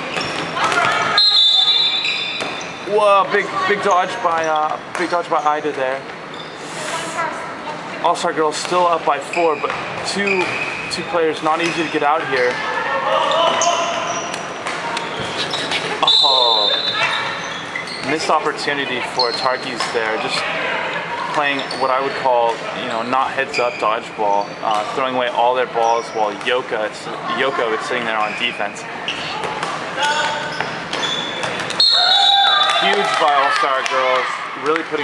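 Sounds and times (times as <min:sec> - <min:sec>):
players shouting: 0:12.4 - 0:14.4, 0:31.8 - 0:35.0.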